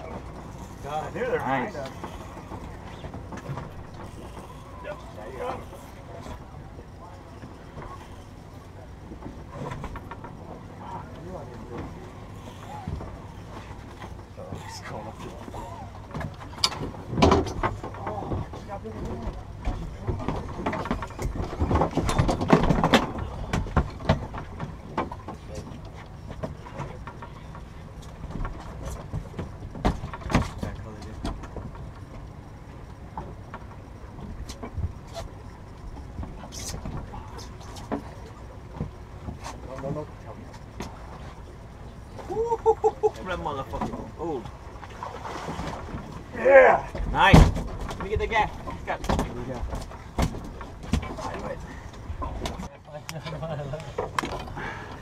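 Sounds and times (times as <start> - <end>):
steady low hum: 0.0 - 55.0
sharp clicks and knocks of gear: 0.1 - 42.1, 47.0 - 55.0
fishing reels cranking: 3.4 - 6.4.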